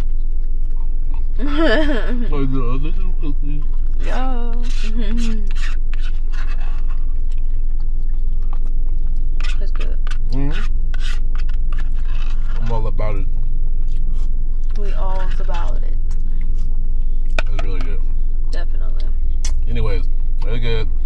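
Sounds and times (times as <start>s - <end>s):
hummed murmurs: 0.0s - 7.6s, 9.4s - 10.7s, 12.0s - 13.3s, 14.0s - 21.0s
low hum inside car: 0.0s - 21.0s
spoon scraping in paper cup: 4.1s - 7.0s, 9.4s - 12.8s.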